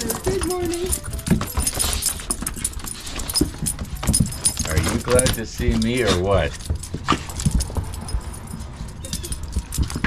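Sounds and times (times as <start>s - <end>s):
dog collar tags jingling: 0.0s - 10.0s.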